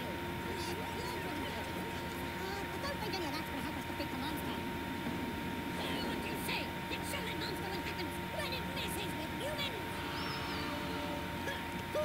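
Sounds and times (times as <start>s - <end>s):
indistinct voices talking: 0.0s - 12.0s
low hum: 0.0s - 12.0s
thin steady high tone: 5.4s - 12.0s.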